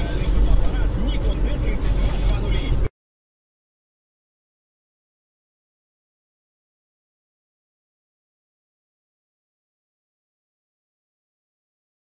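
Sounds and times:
car road and engine noise: 0.0 - 2.9.

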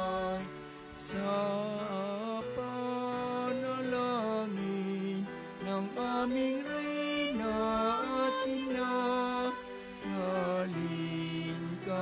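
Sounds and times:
voices singing a hymn: 0.0 - 12.0.

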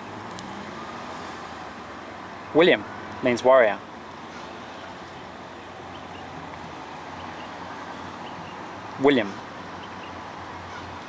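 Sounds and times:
motor vehicle hum: 0.0 - 11.0.

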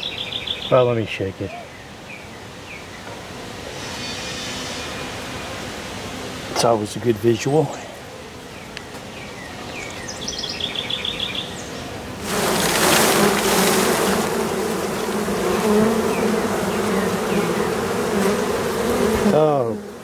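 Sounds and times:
loud buzz of bees: 1.9 - 20.0
bees shaken into hive box: 12.2 - 15.8.

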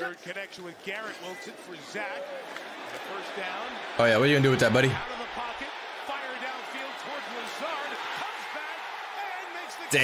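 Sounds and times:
commentator talking: 0.0 - 10.0
stadium crowd noise: 0.0 - 10.0.

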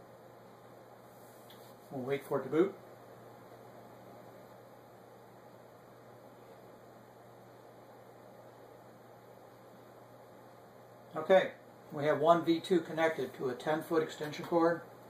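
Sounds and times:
faint hiss: 0.0 - 15.0.

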